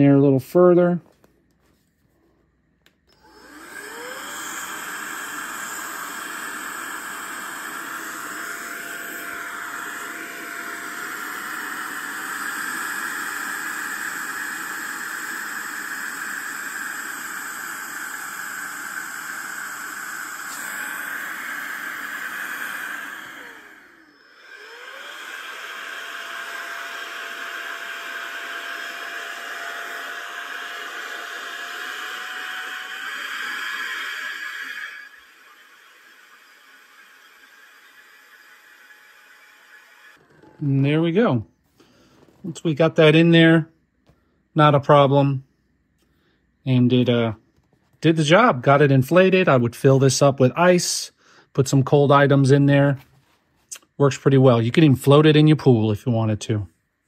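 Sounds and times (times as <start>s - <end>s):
small fan motor whining: 2.9s - 43.5s.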